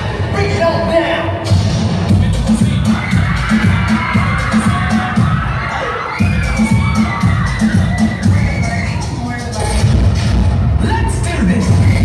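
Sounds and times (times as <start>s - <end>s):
dance music with pulsing bass: 0.0s - 12.0s
crowd cheering: 2.6s - 9.8s
children shouting: 2.8s - 9.2s.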